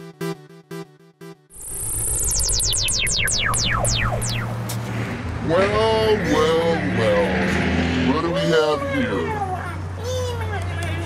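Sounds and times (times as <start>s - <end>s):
quick falling synth sweeps: 1.6s - 5.2s
short pulsing synth notes: 1.6s - 5.2s
low hum: 1.6s - 5.5s.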